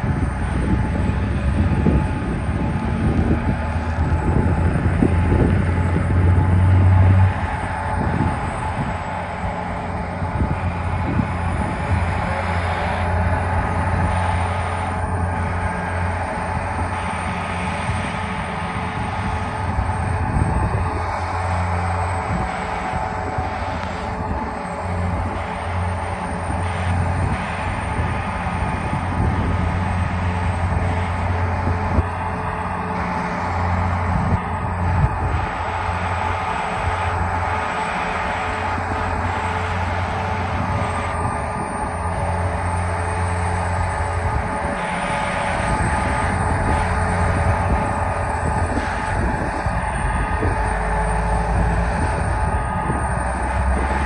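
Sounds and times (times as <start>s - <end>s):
deep hum: 0.0s - 54.0s
diesel engines droning: 0.0s - 54.0s.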